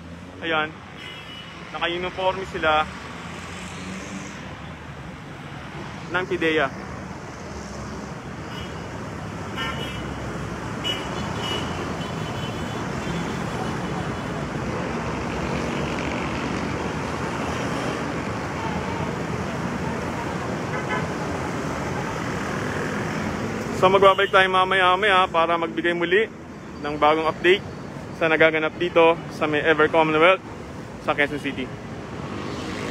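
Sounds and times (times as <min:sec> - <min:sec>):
city road traffic: 0:00.0 - 0:32.9.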